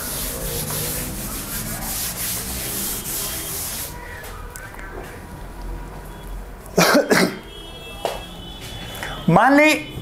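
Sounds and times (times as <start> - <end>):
duster rubbing on chalkboard: 0.0 - 4.0.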